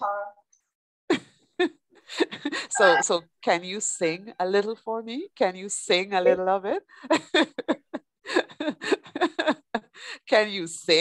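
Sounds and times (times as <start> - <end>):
woman laughing: 1.1 - 3.1, 7.0 - 10.0.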